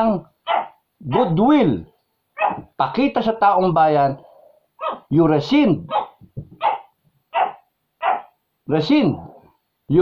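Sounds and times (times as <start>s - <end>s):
dog barking: 0.5s - 1.4s, 2.4s - 2.7s, 4.8s - 5.1s, 5.9s - 8.4s.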